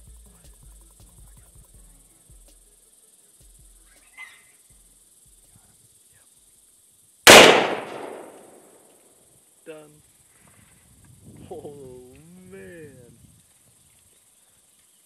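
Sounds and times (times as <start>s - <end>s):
rifle shot with echo: 7.3s - 8.8s.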